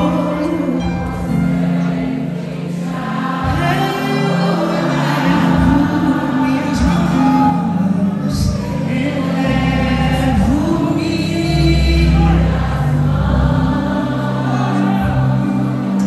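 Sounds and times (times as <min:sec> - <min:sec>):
amplified instrumental accompaniment: 0:00.0 - 0:16.0.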